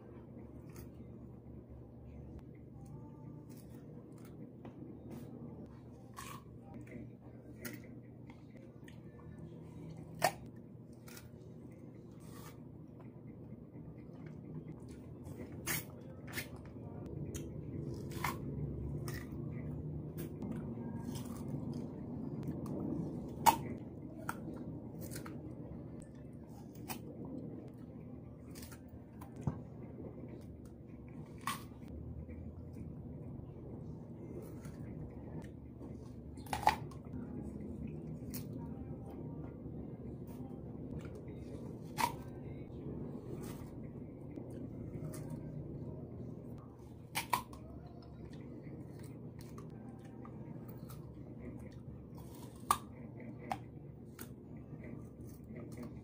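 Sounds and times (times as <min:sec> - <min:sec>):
low hum: 0:00.0 - 0:56.0.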